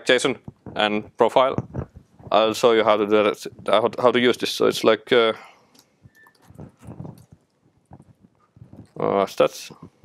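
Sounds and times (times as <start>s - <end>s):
laptop keyboard typing: 6.1s - 9.0s.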